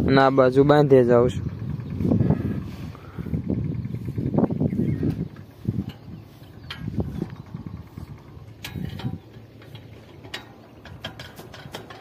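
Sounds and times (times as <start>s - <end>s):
hand tool clicking on metal: 8.5s - 12.0s.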